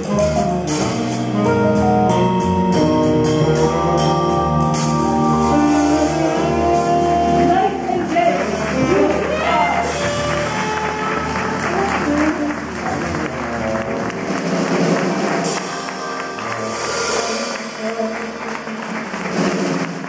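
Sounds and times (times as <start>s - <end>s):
drum kit: 0.0s - 20.0s
saxophone: 0.0s - 20.0s
upright double bass: 0.0s - 20.0s
audience applause: 8.0s - 20.0s.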